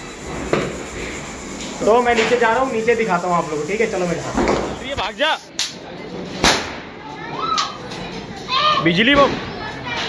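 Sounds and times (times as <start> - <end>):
firecracker crack: 4.4 - 7.8
children calling out: 7.0 - 10.0.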